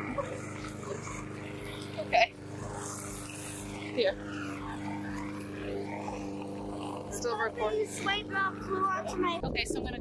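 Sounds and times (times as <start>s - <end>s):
engine humming: 0.0s - 10.0s.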